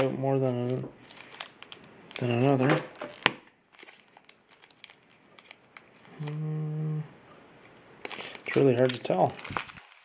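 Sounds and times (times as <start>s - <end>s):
foil card packs crinkling: 0.0s - 6.4s, 8.0s - 10.0s
man humming hmm: 6.1s - 7.2s.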